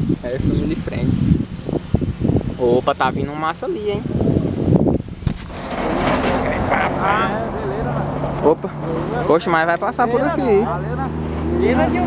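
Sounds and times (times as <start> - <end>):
voices: 5.3 - 12.0
truck approaching on highway: 5.6 - 12.0.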